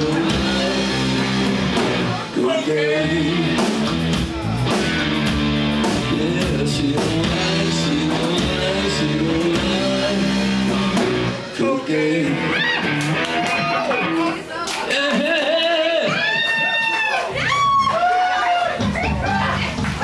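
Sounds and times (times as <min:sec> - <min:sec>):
bass guitar: 0:00.0 - 0:16.3, 0:17.3 - 0:20.0
electric guitars: 0:00.0 - 0:16.6
drums: 0:00.0 - 0:20.0.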